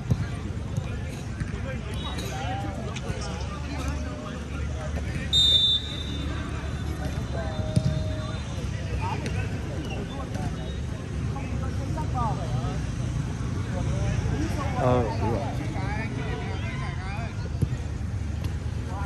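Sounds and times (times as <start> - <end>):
low traffic rumble: 0.0 - 19.0
referee's whistle blast: 5.3 - 6.4.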